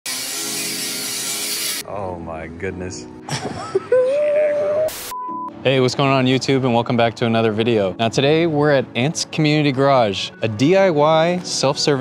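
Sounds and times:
angle grinder cutting steel: 0:00.0 - 0:01.8.

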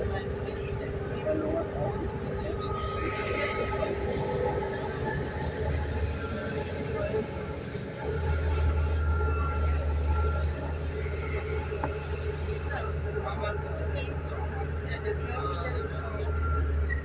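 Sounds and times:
train wheels rumbling on rails: 0:00.0 - 0:15.1
faint thin whine: 0:00.0 - 0:17.0.

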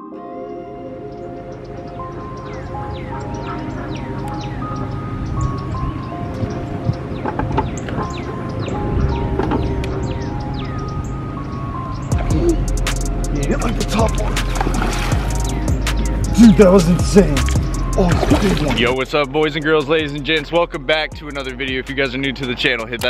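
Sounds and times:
background music with bass: 0:00.0 - 0:23.0.

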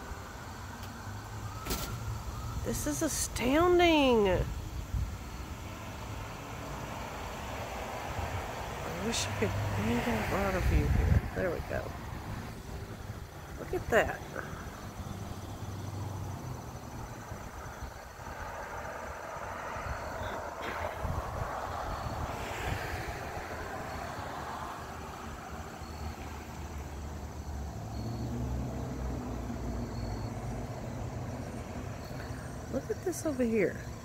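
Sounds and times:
passing vehicle rush: 0:00.0 - 0:34.0.

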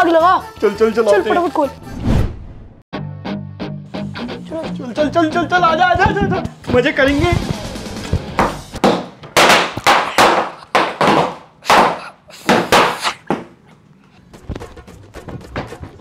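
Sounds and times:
firecrackers banging: 0:08.4 - 0:13.5.

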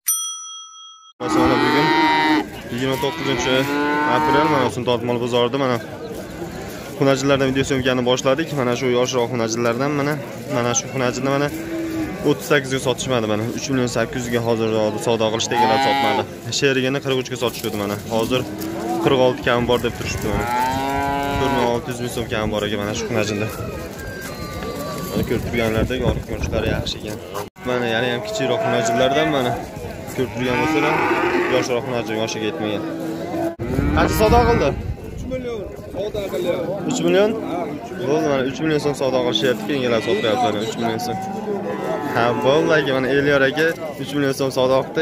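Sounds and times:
calf mooing: 0:01.2 - 0:04.7, 0:30.4 - 0:31.7
cattle mooing: 0:01.2 - 0:04.7, 0:15.4 - 0:16.3, 0:20.2 - 0:21.8, 0:27.8 - 0:29.6, 0:30.2 - 0:34.7.

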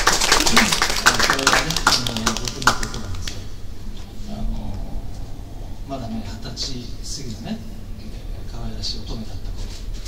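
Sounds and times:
audience clapping: 0:00.0 - 0:03.5.

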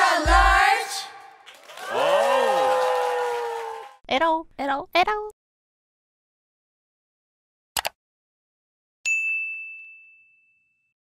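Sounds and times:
notification bell ding: 0:09.1 - 0:11.0.

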